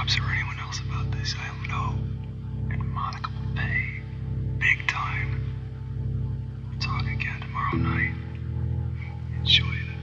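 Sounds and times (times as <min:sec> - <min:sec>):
person whispering: 0:00.0 - 0:02.0, 0:02.7 - 0:05.4, 0:06.8 - 0:08.3, 0:09.1 - 0:10.0
low droning music: 0:00.0 - 0:10.0.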